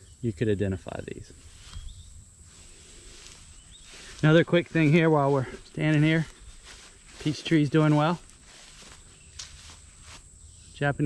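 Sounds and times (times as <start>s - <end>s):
footsteps on grass: 1.3s - 10.5s.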